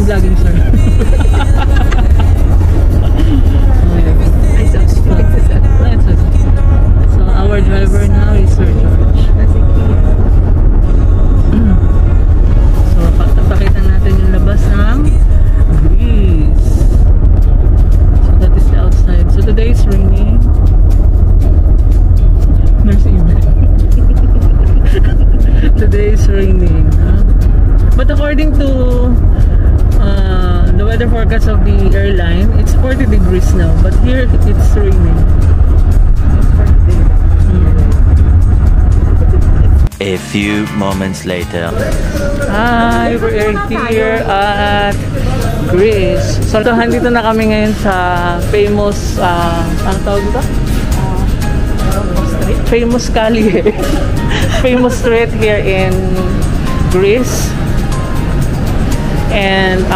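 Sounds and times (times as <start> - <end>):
voices: 0.0 - 17.1, 17.7 - 20.5, 22.3 - 35.6, 36.4 - 38.3, 39.0 - 59.9
car road and engine rumble: 0.0 - 59.9
music: 0.0 - 59.9
person speaking: 39.3 - 51.3.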